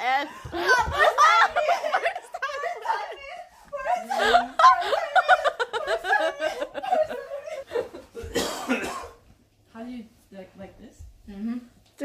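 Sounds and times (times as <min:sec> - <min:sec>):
people shouting and laughing: 0:00.0 - 0:08.3.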